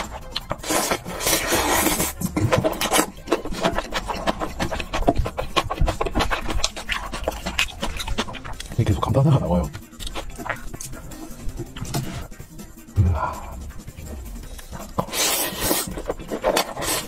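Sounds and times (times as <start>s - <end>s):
noodle slurping: 0.0s - 8.9s, 9.5s - 17.0s
wet chewing and lip smacking: 0.0s - 17.0s.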